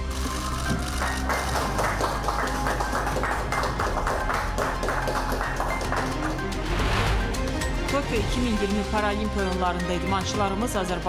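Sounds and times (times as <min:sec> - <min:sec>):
small group clapping: 0:00.0 - 0:06.8
news music: 0:00.0 - 0:11.0.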